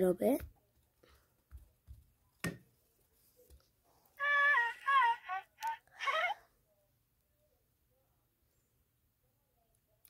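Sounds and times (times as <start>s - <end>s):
high-pitched voice singing: 4.2s - 6.4s.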